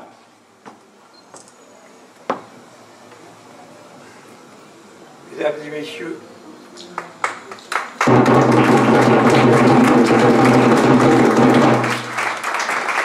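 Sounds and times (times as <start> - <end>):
crowd clapping: 6.9 - 13.0.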